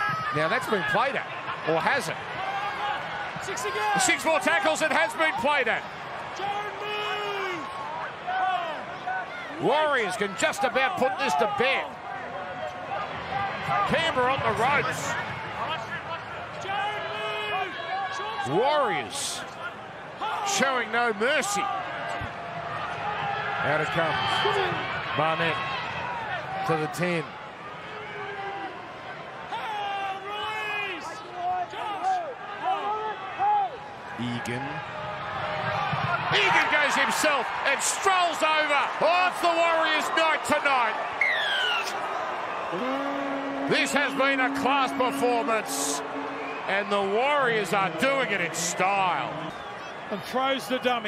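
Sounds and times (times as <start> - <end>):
murmur of stadium crowd: 0.0 - 51.0
men shouting short calls: 42.7 - 46.8
man commentating: 42.7 - 49.5.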